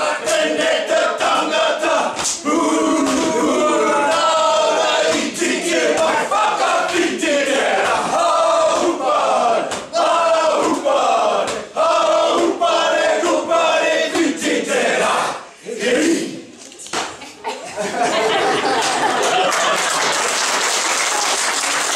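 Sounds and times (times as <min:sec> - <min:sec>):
men chanting and shouting in unison: 0:00.0 - 0:16.5
hand slaps on body: 0:09.7 - 0:09.9.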